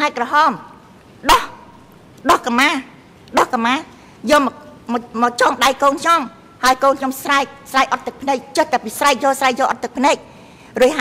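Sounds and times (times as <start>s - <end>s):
woman speaking into a microphone: 0.0s - 11.0s.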